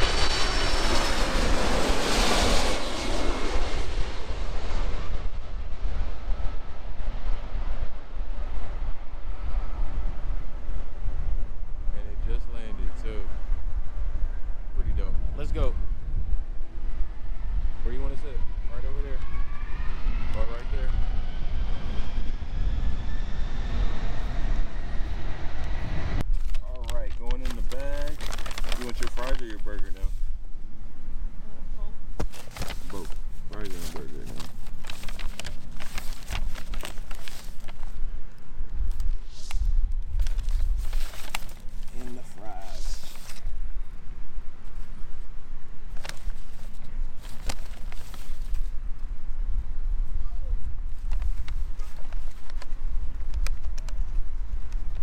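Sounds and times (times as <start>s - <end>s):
jet airliner flying low overhead: 0.0s - 26.2s
paper bag crinkling: 26.3s - 30.0s, 32.2s - 38.0s, 40.1s - 43.4s, 45.9s - 48.7s
voices: 41.9s - 43.4s.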